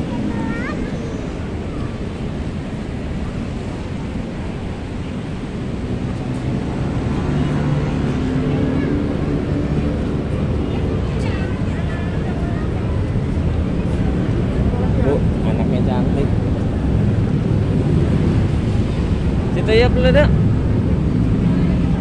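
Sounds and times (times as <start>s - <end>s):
people chattering: 0.0s - 22.0s
road traffic rumble: 0.0s - 22.0s
wind buffeting microphone: 0.0s - 22.0s.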